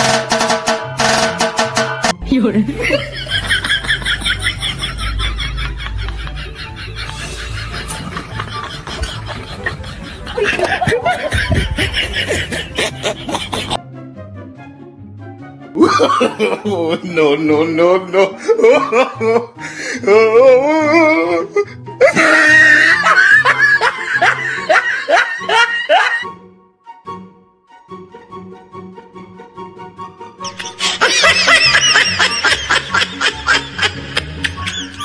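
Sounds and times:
background music: 0:00.0 - 0:35.0
person laughing and giggling: 0:02.6 - 0:13.8, 0:15.8 - 0:17.2, 0:18.0 - 0:26.3, 0:30.4 - 0:35.0.

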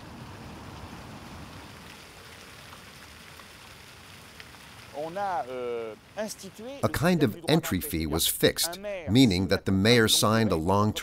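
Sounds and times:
fountain water splashing into basin: 0:00.0 - 0:06.8.

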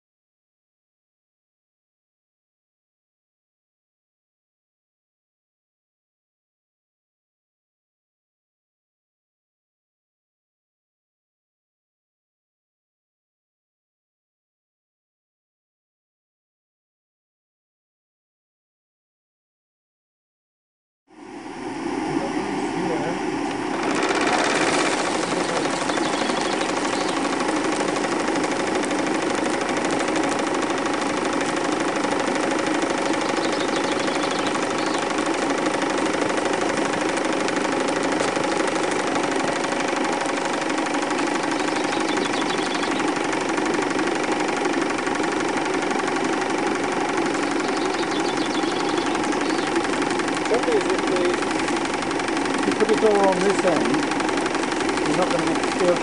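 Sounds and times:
steam engine hissing: 0:23.8 - 0:40.1.

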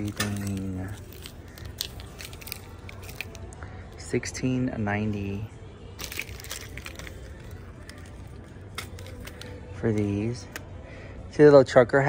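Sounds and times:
merchandise clicks and crackles: 0:00.0 - 0:04.1, 0:05.0 - 0:10.9
store room noise: 0:00.0 - 0:12.0.

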